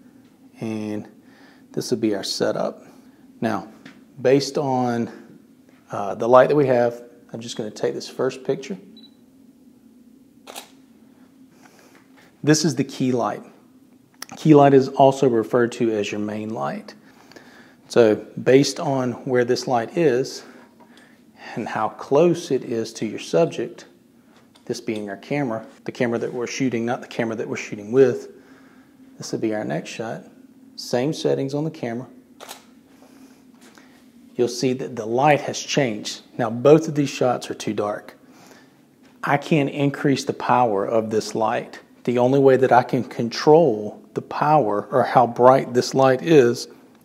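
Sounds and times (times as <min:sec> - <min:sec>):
camera shutter click: 0:10.4 - 0:10.8, 0:32.4 - 0:32.7.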